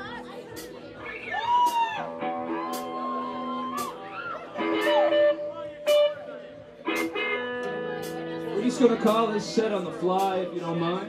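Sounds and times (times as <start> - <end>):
electric guitar strummed: 2.1 - 10.5.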